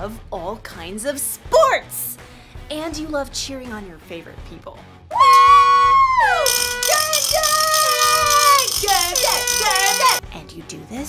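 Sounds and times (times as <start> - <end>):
wooden noisemaker rattling: 6.4 - 10.2.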